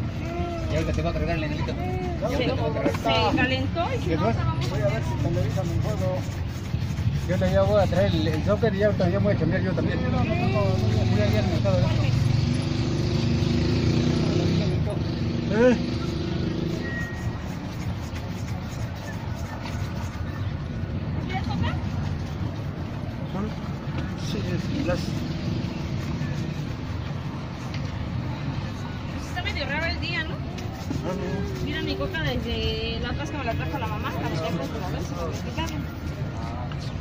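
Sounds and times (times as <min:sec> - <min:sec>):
street traffic: 0:00.0 - 0:37.0
shoe brush scrubbing leather: 0:00.1 - 0:13.5, 0:14.1 - 0:37.0.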